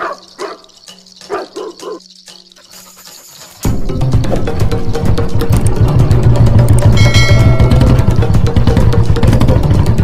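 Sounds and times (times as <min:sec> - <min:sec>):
dog barking: 0:00.0 - 0:00.7, 0:01.3 - 0:02.0.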